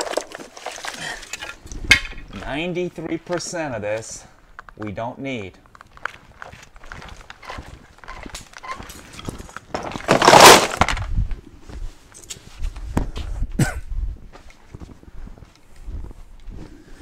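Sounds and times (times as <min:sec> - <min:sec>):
footsteps on stone pavers: 0:00.0 - 0:17.0
wiring dumped into plastic bin: 0:09.8 - 0:11.0.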